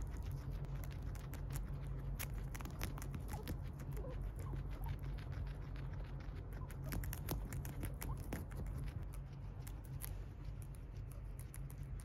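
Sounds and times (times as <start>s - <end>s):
guinea pig chewing greens: 0.0s - 12.0s
low steady hum: 0.0s - 12.0s.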